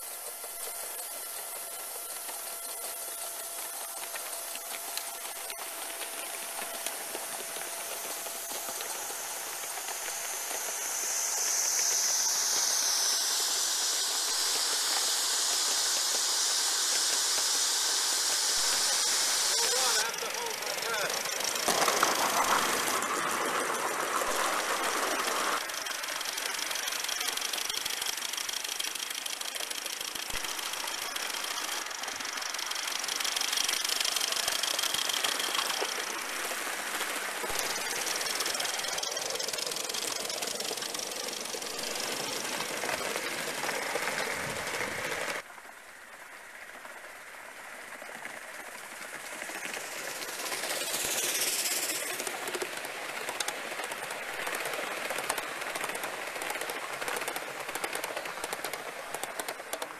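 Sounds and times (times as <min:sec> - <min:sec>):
model steam locomotives running: 0:00.0 - 0:59.9
steam hissing: 0:00.0 - 0:59.9.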